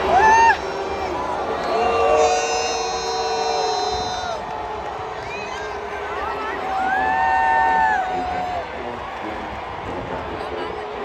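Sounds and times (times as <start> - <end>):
marching band sustained chord: 0.0 - 11.0
murmur of stadium crowd: 0.0 - 11.0.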